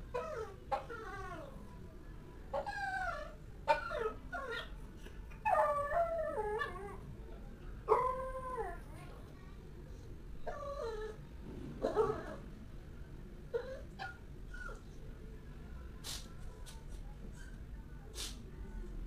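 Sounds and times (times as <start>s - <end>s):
dog whining and howling: 0.1s - 1.6s, 2.6s - 4.7s, 5.4s - 7.0s.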